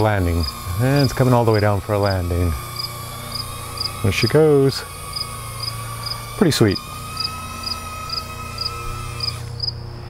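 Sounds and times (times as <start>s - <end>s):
high-pitched hum: 0.0s - 10.0s
cricket chirping: 9.2s - 9.8s.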